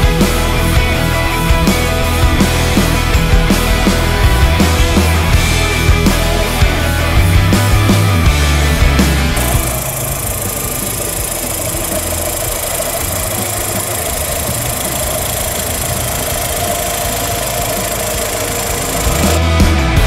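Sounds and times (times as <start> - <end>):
car engine idling: 0.0 - 20.0
rock music: 0.0 - 20.0.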